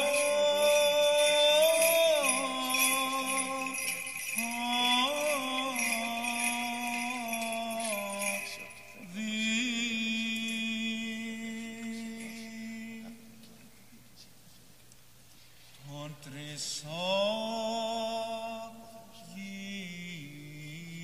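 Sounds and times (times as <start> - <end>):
small bells jingling: 0.0 - 13.0
man chanting: 0.0 - 13.4, 15.8 - 21.0.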